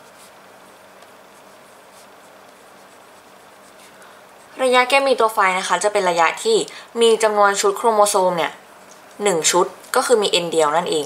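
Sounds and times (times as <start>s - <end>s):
pen scratching on paper: 0.0s - 4.0s
steady low hum: 0.0s - 11.0s.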